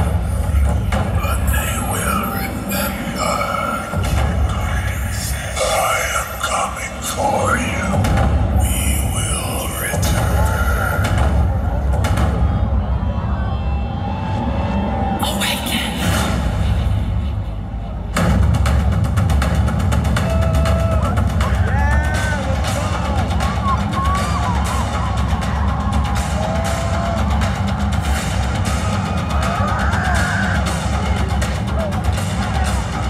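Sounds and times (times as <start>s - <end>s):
voices: 0.0s - 16.8s
deep steady bass rumble: 0.0s - 33.0s
music: 0.0s - 33.0s
fast rhythmic pulsing: 15.9s - 33.0s.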